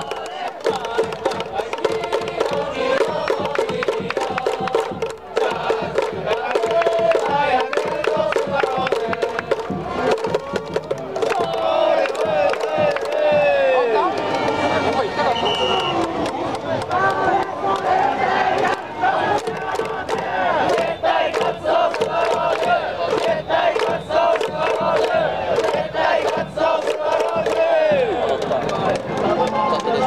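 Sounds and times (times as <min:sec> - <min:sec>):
crowd chanting: 0:00.0 - 0:30.0
crowd clapping on a beat: 0:00.0 - 0:30.0
crowd shouts: 0:09.7 - 0:30.0.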